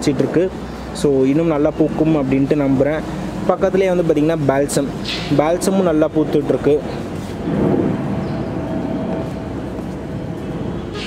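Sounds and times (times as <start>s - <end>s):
airplane passing overhead: 2.9s - 11.0s.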